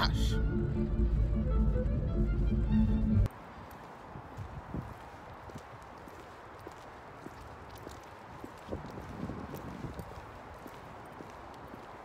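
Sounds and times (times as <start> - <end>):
background music: 0.0 - 3.3
footsteps on concrete: 3.2 - 12.0.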